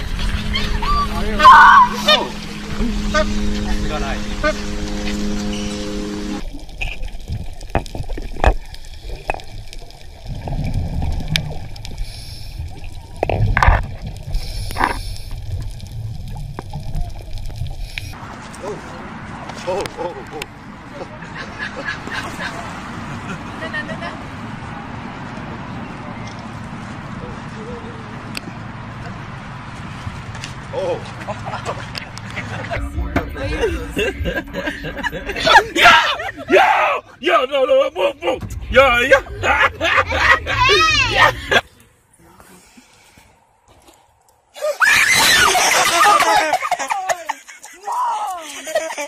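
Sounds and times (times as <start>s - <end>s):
steady low hum: 0.0s - 7.1s, 32.5s - 36.5s, 37.8s - 43.7s
muffled underwater water noise: 0.0s - 35.5s
person shouting: 0.8s - 2.3s, 35.5s - 37.1s, 40.2s - 41.5s.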